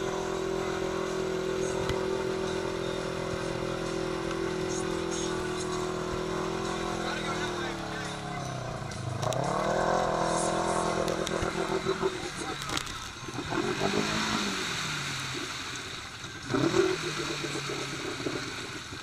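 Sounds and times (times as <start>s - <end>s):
engine at high revs: 0.0s - 19.0s
vehicle pushing through mud: 0.0s - 19.0s.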